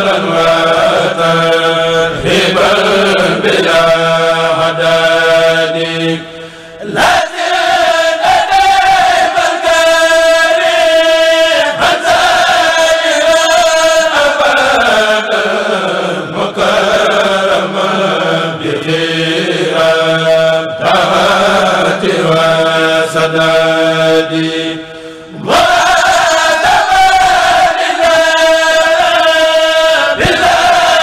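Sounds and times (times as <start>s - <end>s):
male voices chanting together: 0.0s - 31.0s.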